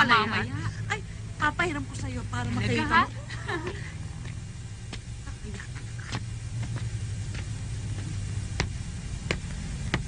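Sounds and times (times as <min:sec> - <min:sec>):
steady low hum: 0:00.0 - 0:10.0
footsteps on paved street: 0:04.0 - 0:10.0.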